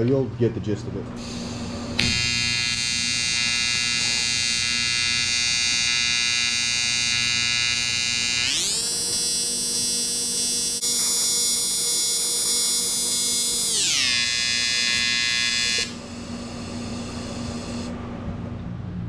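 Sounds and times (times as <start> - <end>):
welding arc buzzing: 1.2 - 18.0.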